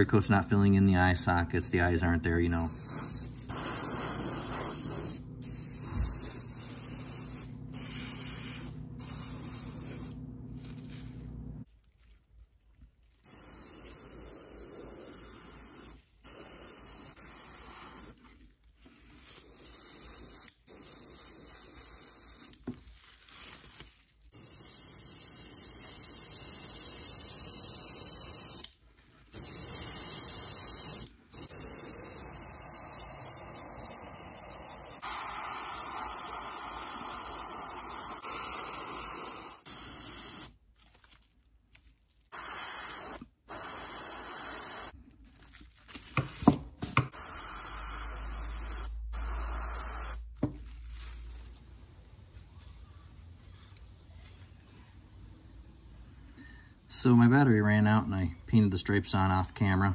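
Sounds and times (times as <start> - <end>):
airbrush spraying in bursts: 2.5 - 11.5, 13.2 - 18.3, 19.2 - 22.6, 24.3 - 28.7, 29.3 - 40.6, 42.3 - 45.0, 46.8 - 50.5.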